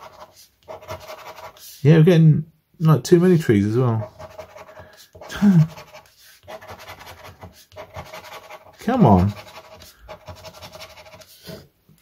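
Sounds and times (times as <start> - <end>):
scraper rubbing scratchcard: 0.0 - 1.8, 4.0 - 11.6.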